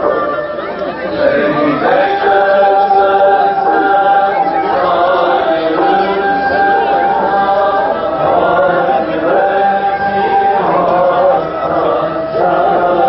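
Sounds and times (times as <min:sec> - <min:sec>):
voices singing a slow chant: 0:00.0 - 0:13.0.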